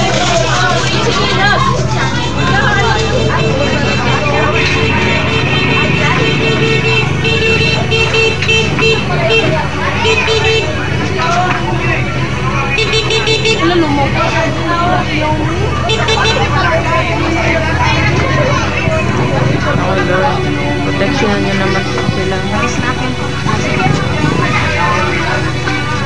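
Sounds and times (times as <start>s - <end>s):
fire truck engine droning: 0.0s - 26.0s
people talking: 0.0s - 26.0s.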